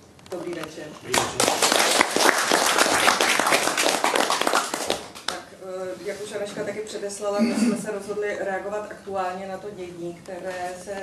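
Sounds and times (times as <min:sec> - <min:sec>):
audience clapping: 0:01.1 - 0:05.4.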